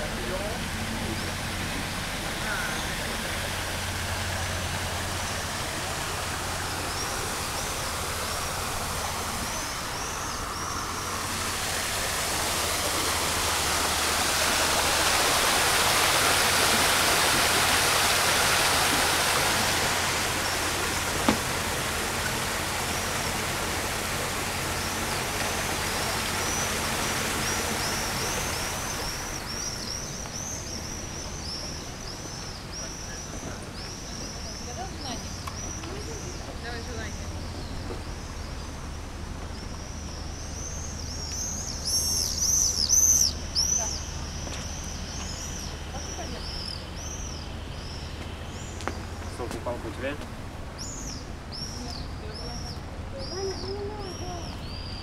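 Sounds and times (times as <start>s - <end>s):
steady rushing noise: 0.0s - 31.6s.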